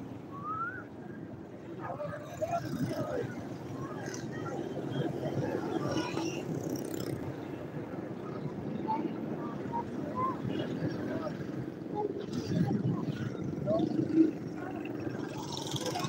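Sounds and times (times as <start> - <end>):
voices: 0.0 - 16.0
road traffic: 2.6 - 16.0.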